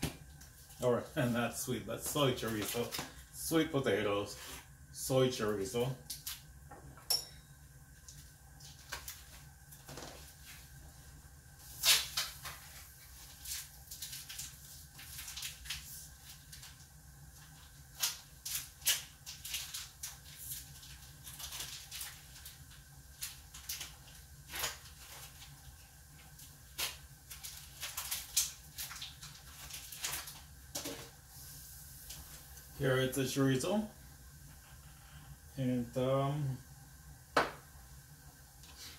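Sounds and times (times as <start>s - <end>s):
low steady hum: 0.0s - 38.9s
plastic wrapper handled: 11.8s - 16.8s, 17.4s - 31.1s.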